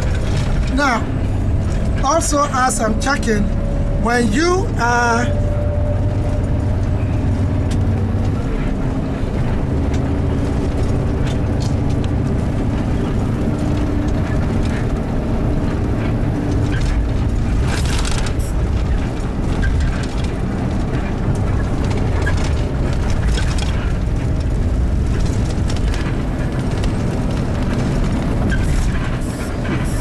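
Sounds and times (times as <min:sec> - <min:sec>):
bus engine and road noise: 0:00.0 - 0:30.0.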